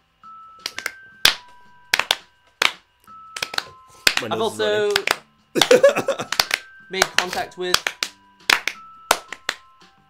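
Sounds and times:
music jingle with held tones: 0:00.1 - 0:05.0
hand claps: 0:00.6 - 0:09.9.

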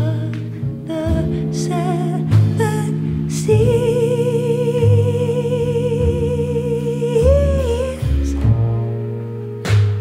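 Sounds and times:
upright bass: 0:00.0 - 0:10.0
woman singing long note: 0:00.9 - 0:08.5.

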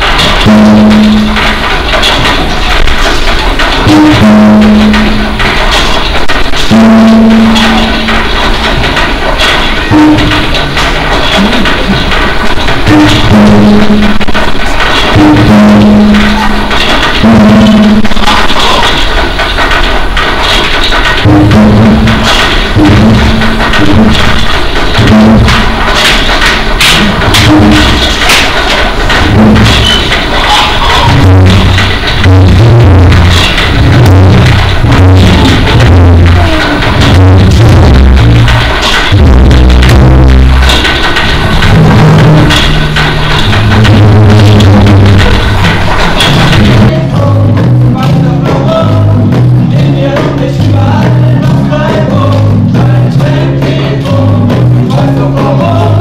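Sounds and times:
bass line: 0:00.0 - 0:18.7, 0:21.2 - 0:56.0
sharp percussion hits: 0:00.0 - 0:56.0.

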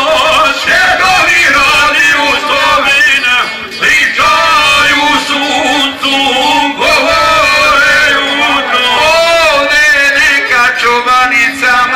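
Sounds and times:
men singing through microphones: 0:00.0 - 0:11.9.

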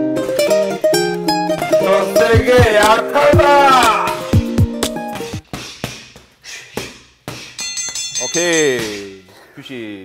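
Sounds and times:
background music: 0:00.0 - 0:05.4.

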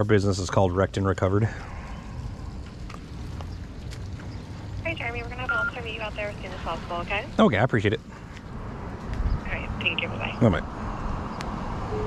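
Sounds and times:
low outdoor rumble: 0:00.0 - 0:12.0
footsteps on wet asphalt: 0:02.9 - 0:04.5.

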